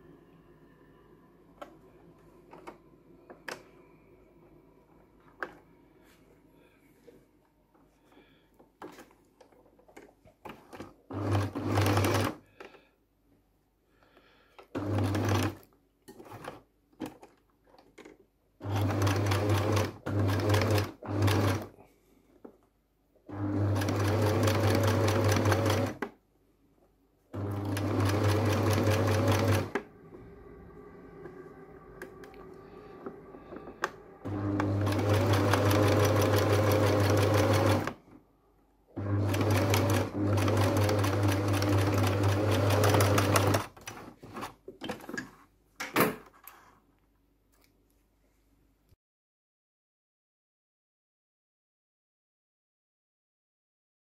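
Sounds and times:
sewing machine stitching: 10.4 - 12.8, 14.7 - 17.3, 18.6 - 21.7, 23.3 - 26.2, 27.4 - 29.9, 33.5 - 38.0, 39.0 - 45.1.

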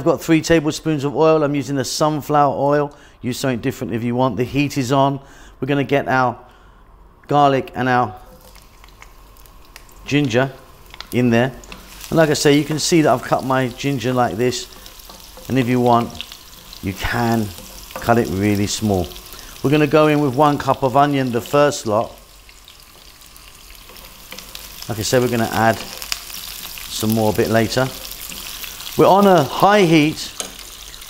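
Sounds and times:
faint sizzle in hot oil: 8.2 - 31.0
wooden spatula stirring: 10.7 - 31.0
wooden spoon clicking on pan: 30.3 - 30.7.

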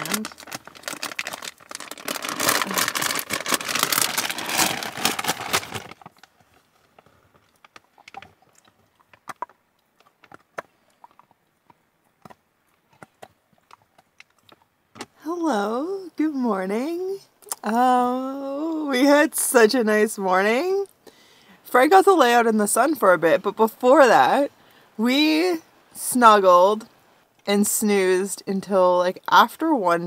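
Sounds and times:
plastic pouch crinkling: 0.0 - 9.4.

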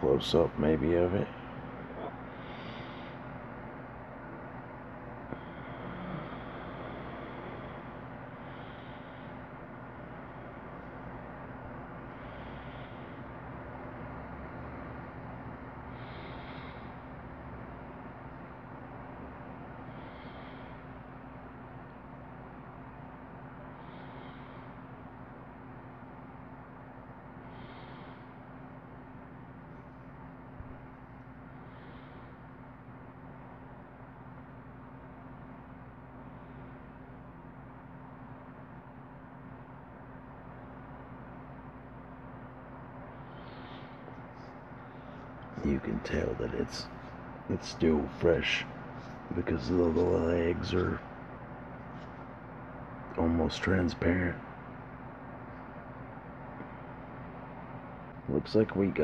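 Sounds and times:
background hum: 0.0 - 59.0.

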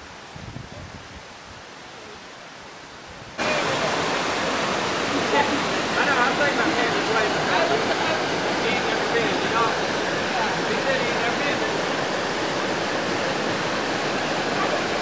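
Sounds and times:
river water rushing over a cascade: 0.0 - 15.0.

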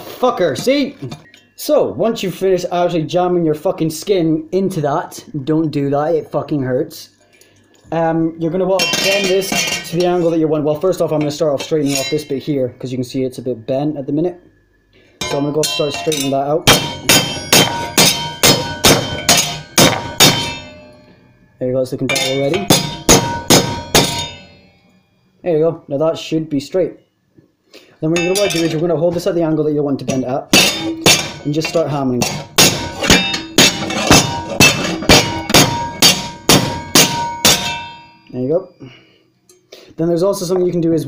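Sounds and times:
rubber mallet striking sheet metal: 15.2 - 21.0, 22.1 - 24.6, 30.1 - 38.2.

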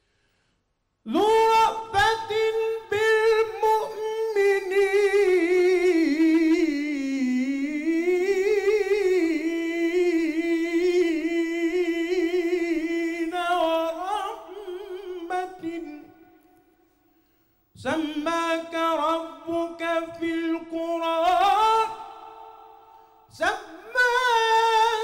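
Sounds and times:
person breathing: 0.0 - 0.7, 16.8 - 17.6, 22.8 - 23.3
man singing devotional chant: 1.1 - 16.3, 17.8 - 25.0.

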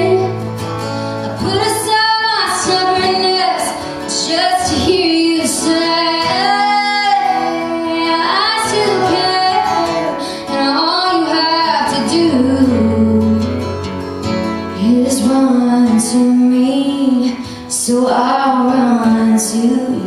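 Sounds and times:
woman singing slow melody: 0.0 - 0.4, 1.2 - 13.8, 14.7 - 20.0
acoustic guitars strummed: 0.0 - 20.0.

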